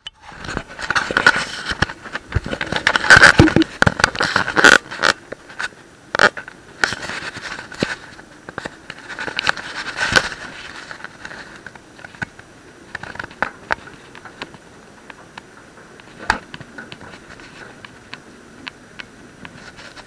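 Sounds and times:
camera handling noise: 0.5s - 5.2s.

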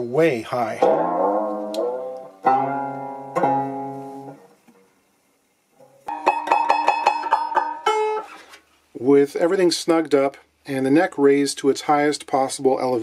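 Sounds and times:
banjo being plucked: 0.7s - 4.9s, 5.8s - 8.5s.

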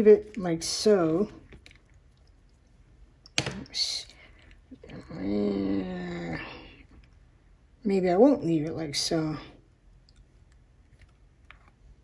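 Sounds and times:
woman humming: 4.8s - 6.7s.

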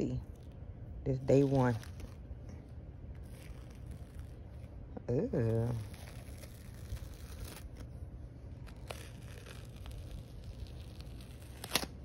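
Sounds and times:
adhesive pad peeling off skin: 8.6s - 11.9s.

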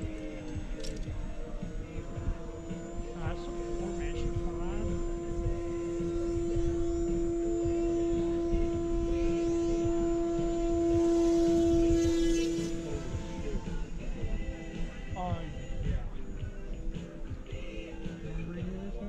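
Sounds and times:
model airplane motor whine: 0.0s - 19.0s.

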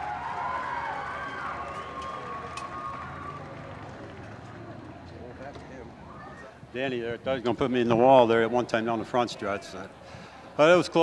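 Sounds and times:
crowd cheering: 0.0s - 6.7s
distant voices: 0.0s - 10.6s.

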